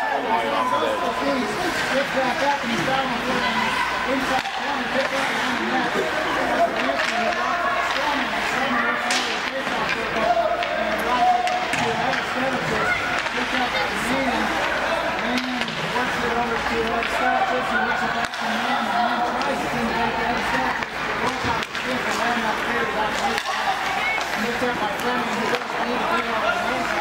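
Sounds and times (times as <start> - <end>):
spectators talking: 0.0 - 27.0.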